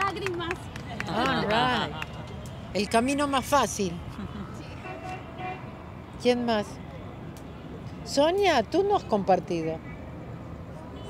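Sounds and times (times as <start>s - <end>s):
distant street traffic rumble: 0.0s - 11.0s.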